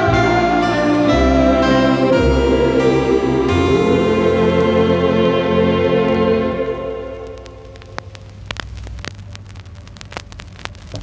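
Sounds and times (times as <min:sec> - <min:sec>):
low rumble and hiss: 0:00.0 - 0:11.0
music from vinyl record: 0:00.0 - 0:11.0
vinyl clicks and pops: 0:06.6 - 0:11.0.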